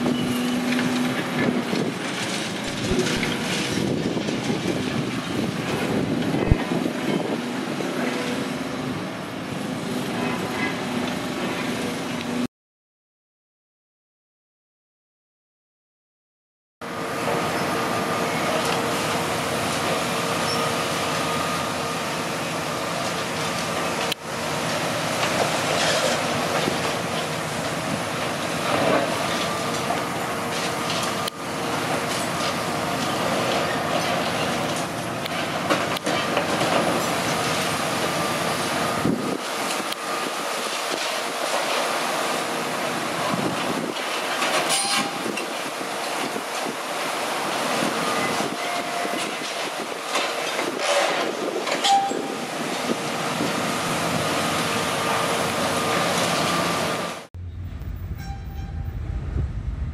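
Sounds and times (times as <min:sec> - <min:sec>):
excavator engine and hydraulics whining: 0:00.0 - 0:12.5, 0:16.8 - 0:59.9
wind buffeting microphone: 0:02.7 - 0:08.5, 0:57.4 - 0:59.9.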